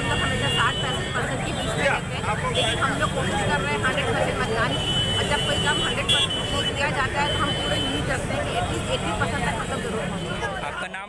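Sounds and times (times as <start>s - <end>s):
woman talking into a microphone: 0.0s - 10.6s
outdoor background noise: 0.0s - 11.0s.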